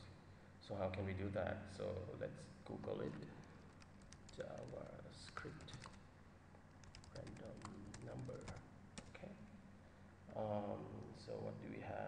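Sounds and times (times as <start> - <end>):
typing on keyboard: 3.4 - 6.0, 6.7 - 9.2.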